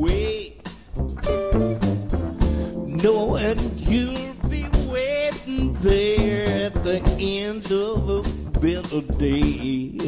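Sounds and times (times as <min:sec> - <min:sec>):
drum kit beats and cymbals: 0:00.0 - 0:10.0
live rock band playing: 0:00.0 - 0:10.0.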